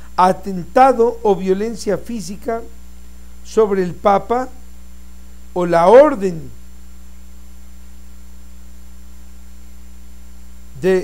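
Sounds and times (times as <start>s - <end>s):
electrical mains hum: 0.0s - 11.0s
man's voice: 0.2s - 2.7s, 3.5s - 4.6s, 5.6s - 6.5s, 10.8s - 11.0s.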